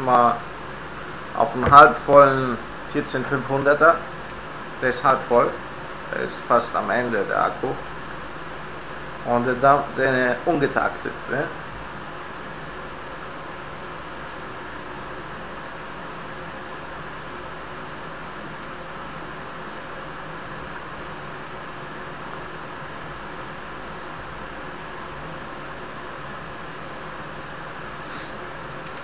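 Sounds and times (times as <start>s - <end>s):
room noise hiss: 0.0s - 29.0s.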